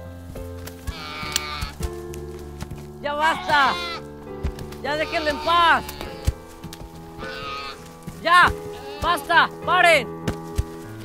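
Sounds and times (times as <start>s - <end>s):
string music: 0.0s - 11.0s
high-pitched cry: 3.3s - 4.0s
dull thump: 10.2s - 10.8s.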